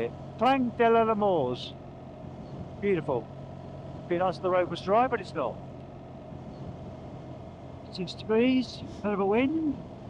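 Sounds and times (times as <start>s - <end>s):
motorcycle engine hum: 0.0s - 10.0s.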